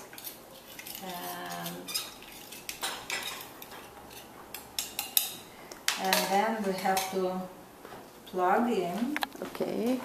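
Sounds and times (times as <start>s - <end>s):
plastic spoon stirring coffee: 0.0s - 5.3s
spoon knocking and scraping pot: 0.0s - 7.2s.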